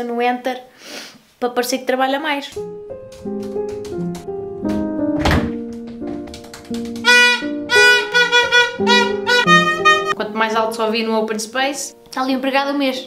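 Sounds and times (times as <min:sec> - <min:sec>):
background music with held notes: 0:02.5 - 0:13.0
heavy thump: 0:04.7 - 0:06.1
plastic toy horn honking: 0:07.0 - 0:10.2.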